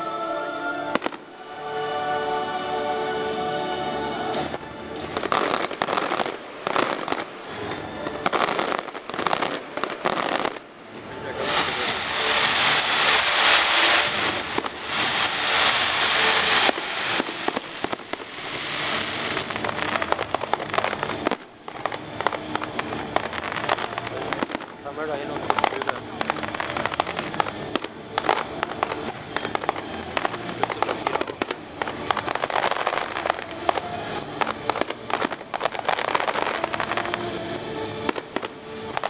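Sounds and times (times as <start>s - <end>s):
firework fountains hissing: 0.0s - 39.0s
firework bangs and crackles: 0.9s - 1.4s, 4.3s - 39.0s.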